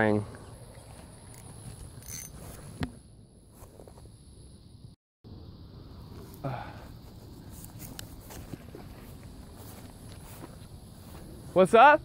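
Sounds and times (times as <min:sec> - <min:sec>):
fishing reel click: 0:02.0 - 0:02.4.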